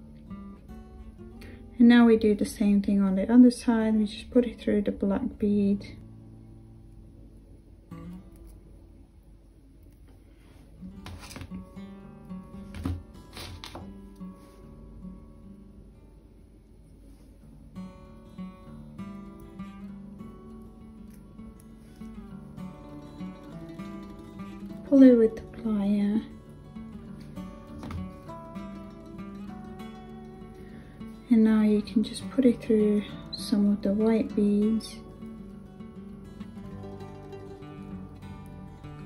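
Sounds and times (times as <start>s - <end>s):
acoustic guitar music: 0.0s - 9.0s, 10.4s - 16.3s, 17.1s - 39.0s.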